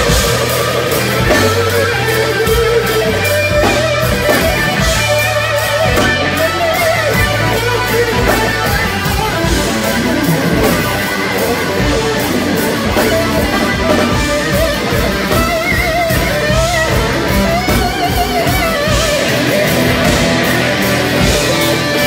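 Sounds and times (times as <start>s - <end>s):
guitar lead with wavering notes: 0.0s - 22.0s
live rock band playing: 0.0s - 22.0s.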